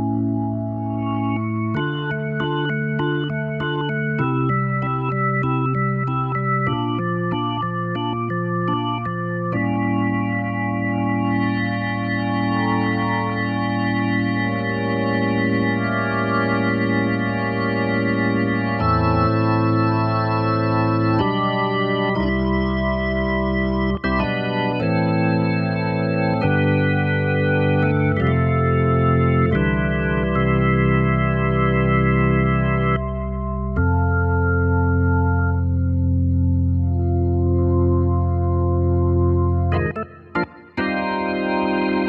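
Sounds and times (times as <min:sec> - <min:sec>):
organ chords over deep bass: 0:00.0 - 0:42.0.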